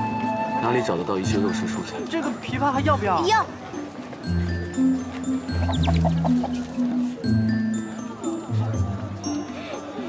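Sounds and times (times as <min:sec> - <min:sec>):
background music with low notes: 0:00.0 - 0:10.0
hen clucking: 0:05.5 - 0:06.8.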